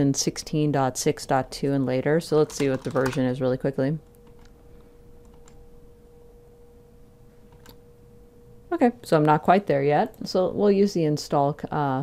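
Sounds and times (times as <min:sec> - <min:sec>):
faint steady hum: 0:00.0 - 0:12.0
computer keyboard clicks: 0:02.4 - 0:03.2.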